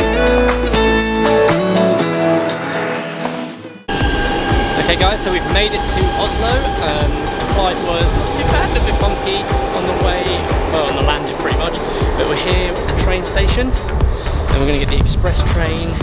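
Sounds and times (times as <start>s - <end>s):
background music with steady beat: 0.0s - 16.0s
man talking: 4.8s - 16.0s.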